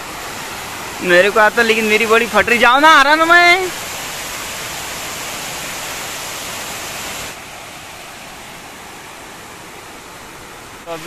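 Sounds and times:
water rushing over spillway: 0.0 - 11.0.

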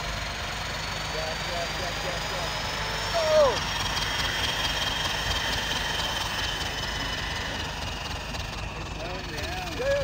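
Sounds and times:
turbocharger whine and rushing air: 0.0 - 10.0.

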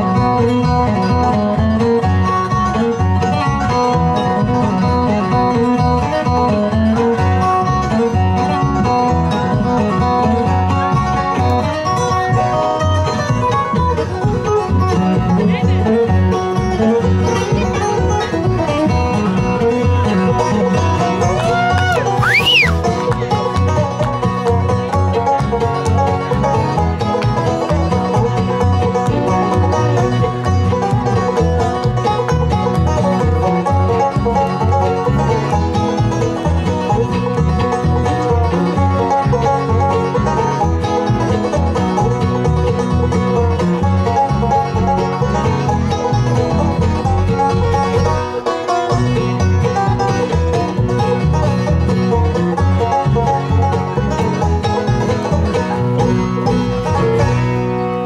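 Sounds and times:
acoustic guitar: 0.0 - 58.0
banjo: 0.0 - 58.0
fiddle: 0.0 - 58.0
upright bass: 0.0 - 58.0.

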